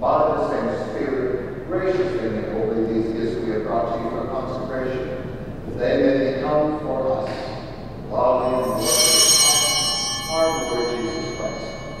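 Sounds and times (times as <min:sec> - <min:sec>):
altar bells ringing: 0:08.2 - 0:12.0.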